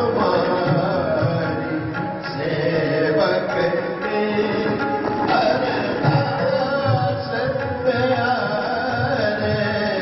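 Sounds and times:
bowed string instrument: 0:00.0 - 0:10.0
harmonium: 0:00.0 - 0:10.0
tabla: 0:00.0 - 0:10.0.

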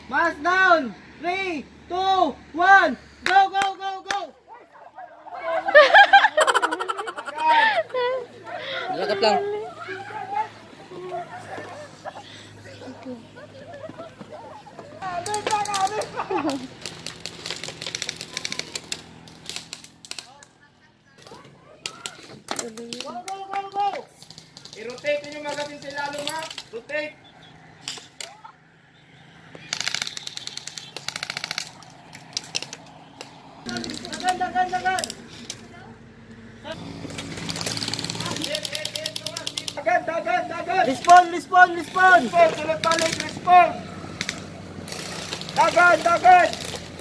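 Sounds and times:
airsoft guns automatic bursts: 0:15.0 - 0:20.4, 0:22.1 - 0:26.8, 0:29.6 - 0:35.6, 0:37.0 - 0:40.0, 0:40.7 - 0:47.0.

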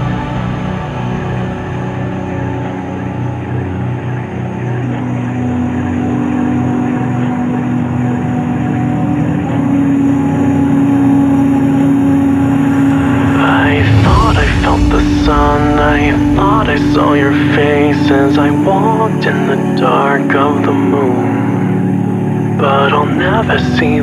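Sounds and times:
growling low synth note: 0:00.0 - 0:03.9, 0:11.2 - 0:18.2
rising synth sweeps: 0:00.0 - 0:04.2, 0:09.9 - 0:19.0
dark electronic bass music: 0:00.0 - 0:24.0.

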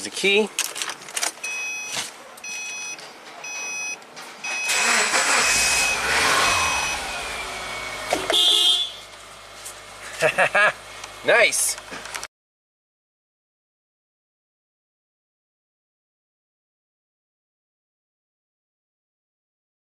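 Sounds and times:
warning chime: 0:01.5 - 0:07.5
car engine cranking and idling: 0:04.0 - 0:12.3.

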